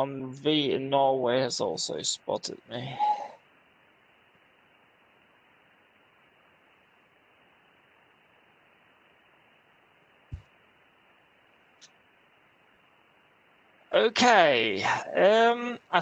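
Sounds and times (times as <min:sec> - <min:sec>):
radio receiver hiss: 0:00.0 - 0:16.0.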